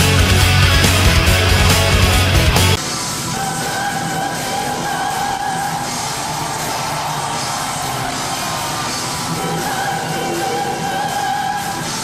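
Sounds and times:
metal band guitars and drums: 0.0 - 12.0.

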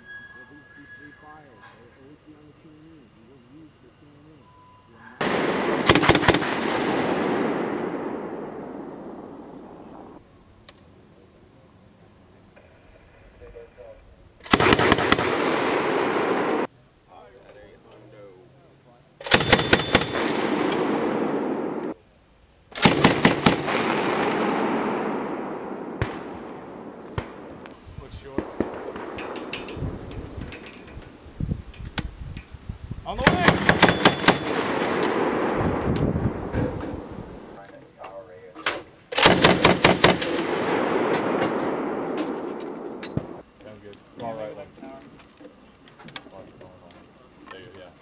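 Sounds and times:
grenade launcher firing bursts: 5.2 - 10.1, 14.5 - 16.7, 19.2 - 22.0, 22.7 - 27.7, 28.3 - 30.4, 33.2 - 37.5, 39.2 - 43.4
rolling echo of gunfire: 5.2 - 10.2, 14.4 - 16.7, 19.2 - 22.0, 22.7 - 30.8, 33.2 - 37.6, 39.2 - 43.4.

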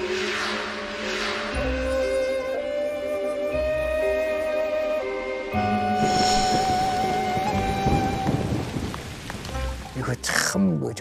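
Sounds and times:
thunder rumbling: 5.8 - 10.0
rain falling: 6.0 - 10.6.

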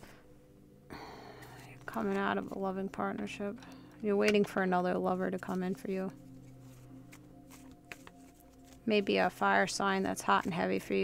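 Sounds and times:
woman speaking: 1.9 - 6.2, 8.9 - 11.0.

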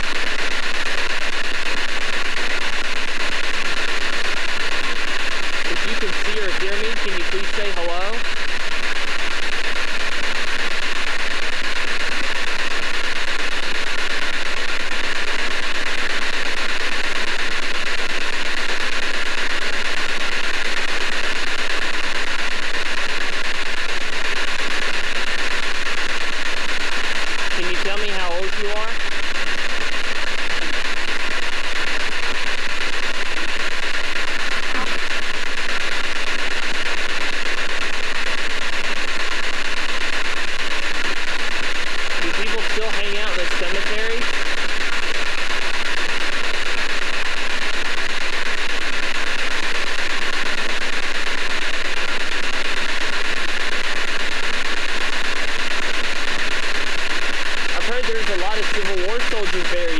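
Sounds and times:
radio static hiss: 0.0 - 59.9
broadcast voice fragments: 5.7 - 8.2, 27.6 - 29.0, 42.2 - 44.3, 57.8 - 59.9.

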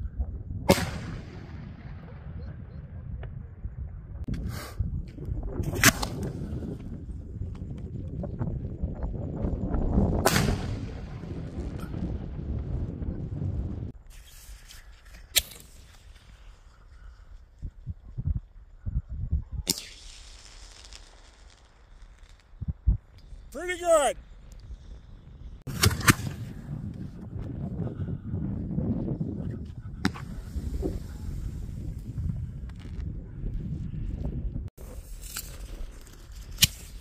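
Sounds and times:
small fireworks pops: 4.3 - 8.3, 13.9 - 27.0, 34.8 - 37.0
fireworks bangs: 19.6 - 22.7, 23.5 - 24.2
fireworks crackling: 19.6 - 26.5.

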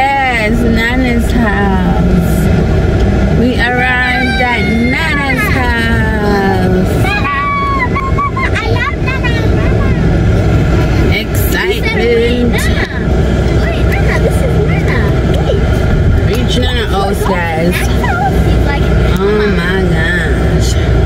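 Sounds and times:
car road and engine rumble: 0.0 - 21.0
voices talking: 0.0 - 21.0.

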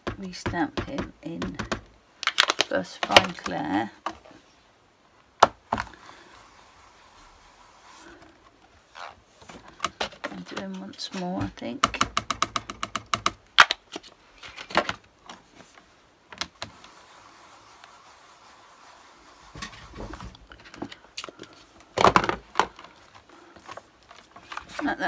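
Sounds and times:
hard plastic clicks and taps: 11.8 - 13.4.

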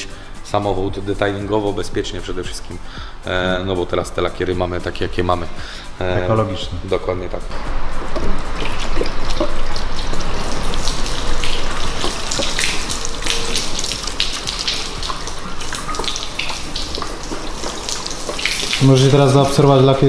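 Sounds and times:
water splashing on car hood: 7.6 - 20.0.

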